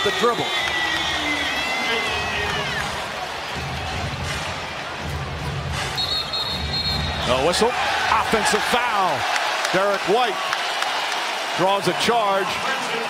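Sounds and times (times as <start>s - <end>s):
arena crowd noise: 0.0s - 13.0s
referee's whistle: 5.9s - 7.3s.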